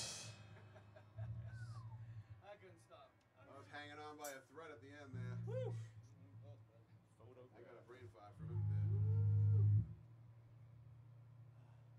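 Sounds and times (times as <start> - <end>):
amplifier hum: 8.4 - 10.0
electric bass low note: 8.4 - 10.0.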